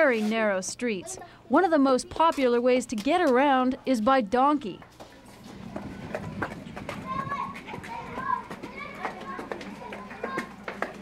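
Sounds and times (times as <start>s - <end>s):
distant children calling and playing: 3.7s - 11.0s.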